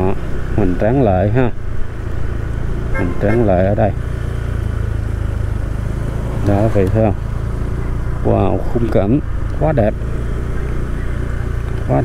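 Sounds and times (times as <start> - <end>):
motorbike engine running: 0.0 - 12.0
road and wind rumble: 0.0 - 12.0.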